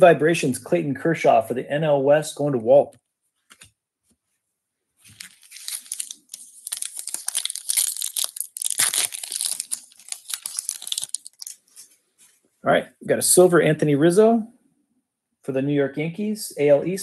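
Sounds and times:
foil wrapper tearing and crinkling: 0:05.1 - 0:11.9.

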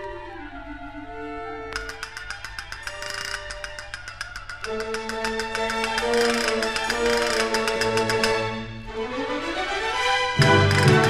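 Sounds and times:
castanets clicking: 0:01.8 - 0:08.5, 0:10.4 - 0:11.0.

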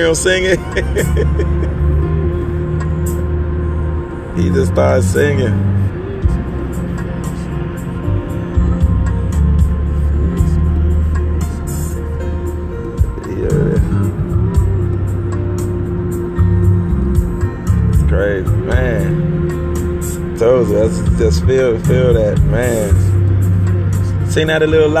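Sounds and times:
sustained low musical tones: 0:00.0 - 0:25.0.

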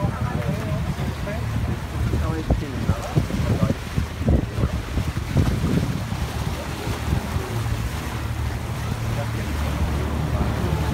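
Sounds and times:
boat engine drone: 0:00.0 - 0:10.9
water washing past hull: 0:00.0 - 0:10.9
wind on microphone: 0:00.0 - 0:10.9.

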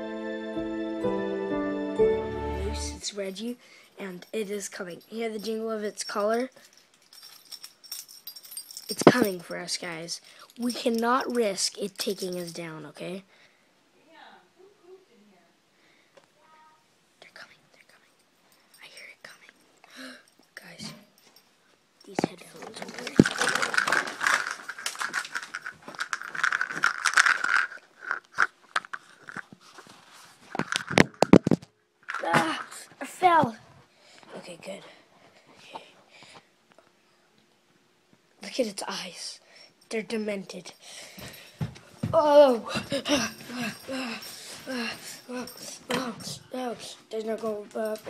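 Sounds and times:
dog collar tags jingling: 0:03.9 - 0:12.8, 0:20.2 - 0:29.4, 0:43.1 - 0:46.6, 0:47.2 - 0:48.0
fabric rustling against phone: 0:29.0 - 0:31.5.

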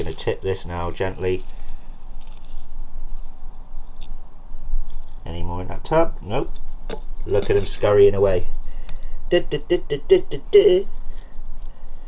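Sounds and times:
soil pattering into plastic: 0:00.0 - 0:02.7
steady low rumble: 0:00.0 - 0:12.0.

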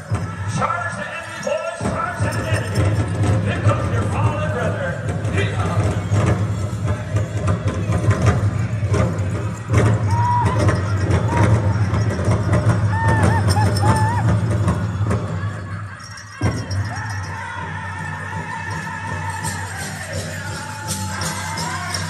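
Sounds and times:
dancers' bells jingling: 0:00.0 - 0:22.0
drum group drumming: 0:00.0 - 0:22.0
group singing: 0:15.7 - 0:22.0.

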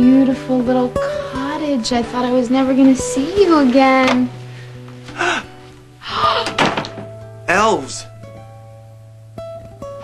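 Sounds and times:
soft background music: 0:00.0 - 0:10.0
wooden door thunking shut: 0:06.4 - 0:07.2.

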